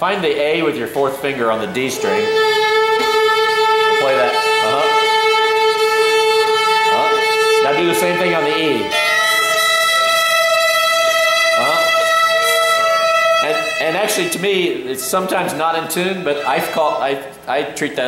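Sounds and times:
fiddle bowing held notes: 0:01.2 - 0:17.4.

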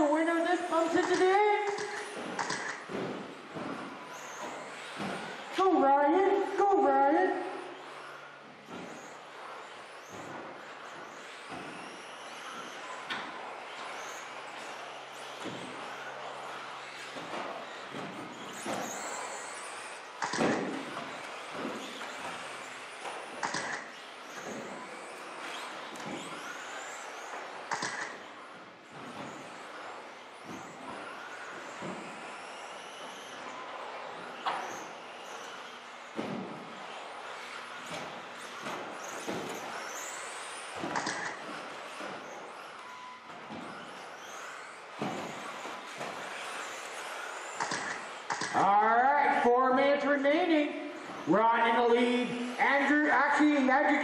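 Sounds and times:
sharp clacks of landings: 0:00.0 - 0:05.6, 0:07.8 - 0:48.7
rc car motors whining: 0:00.0 - 0:54.0
tyre and drivetrain noise: 0:00.0 - 0:54.0.

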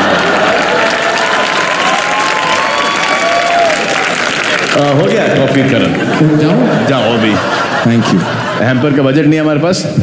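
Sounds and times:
audience applauding and cheering: 0:00.0 - 0:08.5.

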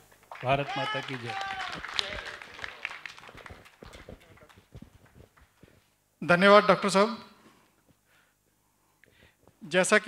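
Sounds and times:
microphone handling knocks and rubs: 0:03.4 - 0:05.9.

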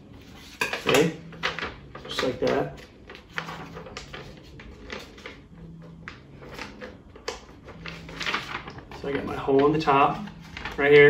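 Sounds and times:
paper crinkling: 0:00.1 - 0:11.0.

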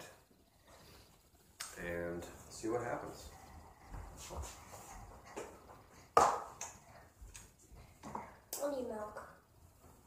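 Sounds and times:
quiet clicks and handling sounds: 0:00.2 - 0:10.0.

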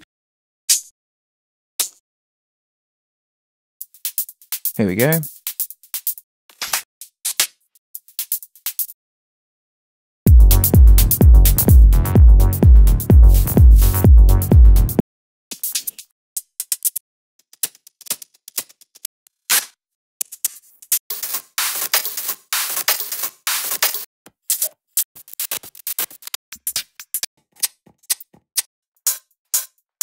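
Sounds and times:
electronic hi-hat loops: 0:10.3 - 0:15.0, 0:21.1 - 0:24.1.

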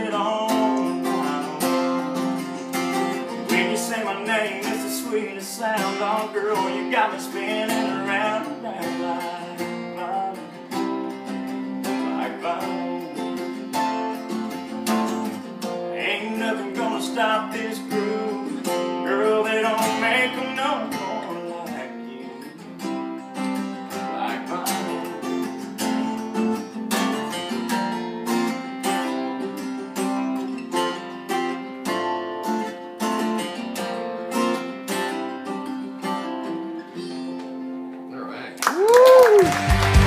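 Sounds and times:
person singing: 0:00.0 - 0:14.1, 0:15.6 - 0:22.8, 0:23.9 - 0:25.6, 0:38.8 - 0:40.0
acoustic guitars playing: 0:00.0 - 0:40.0.

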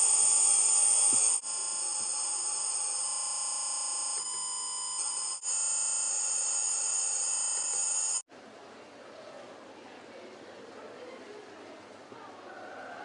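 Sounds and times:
electronic data signal tones: 0:00.0 - 0:08.2
faint background noise: 0:08.3 - 0:13.0.

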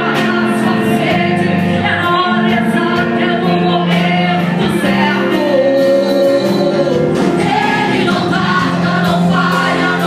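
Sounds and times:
live band drums and cymbals: 0:00.0 - 0:10.0
woman singing gospel song: 0:00.0 - 0:10.0.

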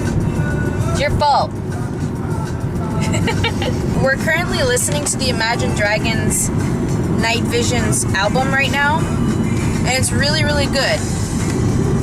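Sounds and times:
faint music from car stereo: 0:00.0 - 0:12.0
road and engine noise in car cabin: 0:00.0 - 0:12.0.

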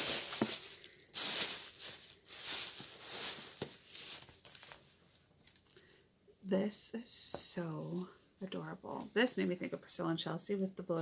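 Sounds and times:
packaging crinkling and rustling: 0:00.0 - 0:05.8.

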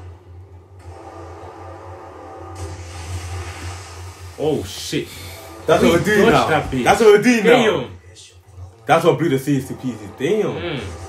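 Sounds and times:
faint music: 0:00.0 - 0:11.0
hiss of noise: 0:02.6 - 0:05.7.

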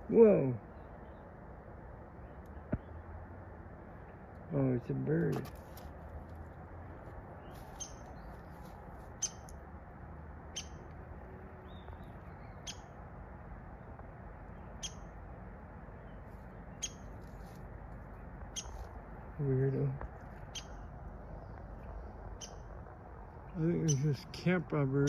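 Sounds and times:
faint low hum: 0:00.0 - 0:25.0.

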